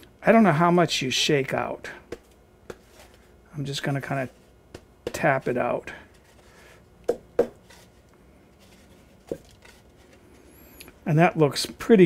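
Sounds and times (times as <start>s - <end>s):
knocking on cane basket: 7.1s - 7.6s.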